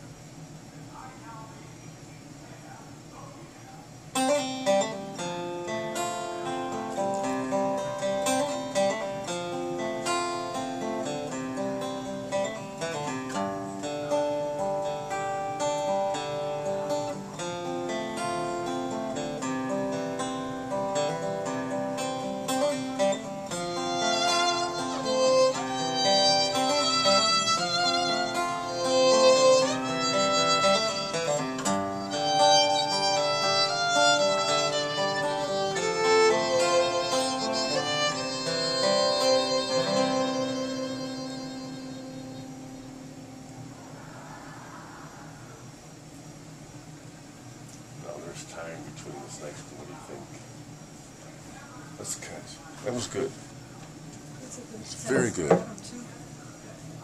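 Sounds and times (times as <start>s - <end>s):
acoustic guitar accompaniment: 4.0s - 44.5s
bowed fiddle melody: 22.5s - 43.1s.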